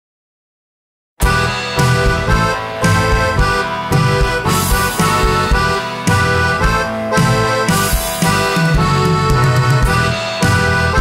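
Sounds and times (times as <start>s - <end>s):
accordion-like melody: 1.2s - 11.0s
bass and drums: 1.2s - 11.0s.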